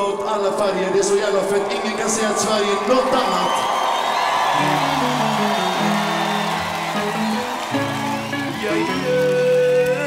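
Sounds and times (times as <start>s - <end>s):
crowd noise: 0.0s - 10.0s
live band playing: 4.4s - 10.0s.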